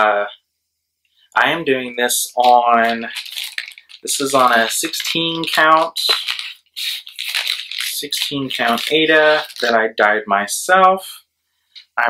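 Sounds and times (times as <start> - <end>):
plastic bag crinkling: 2.1 - 9.8.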